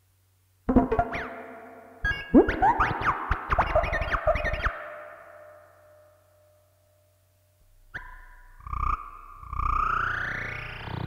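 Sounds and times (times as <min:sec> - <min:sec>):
sharp electronic blip: 0:02.1 - 0:03.7.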